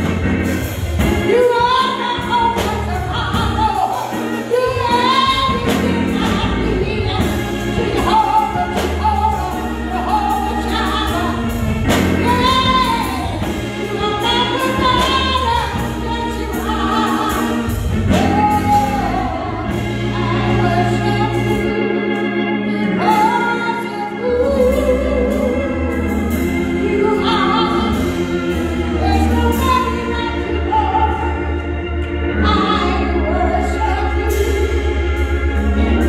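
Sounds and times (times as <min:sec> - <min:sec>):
bass: 0:00.0 - 0:36.0
organ-style keyboard chords: 0:00.0 - 0:36.0
woman singing gospel song: 0:01.0 - 0:36.0.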